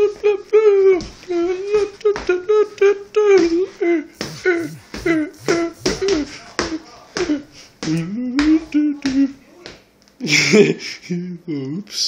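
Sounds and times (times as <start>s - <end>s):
person scat-singing: 0.0s - 9.7s
rough burst of voice: 4.2s - 7.5s.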